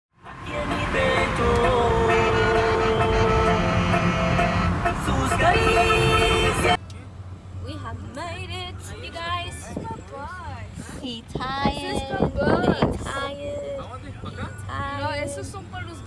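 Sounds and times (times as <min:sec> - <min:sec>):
car road rumble: 0:00.2 - 0:16.0
sustained pitched tones: 0:00.6 - 0:06.8.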